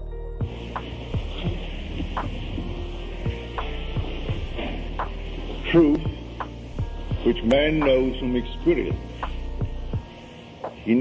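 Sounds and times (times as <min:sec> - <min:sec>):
electrical hum and hiss: 0:00.4 - 0:11.0.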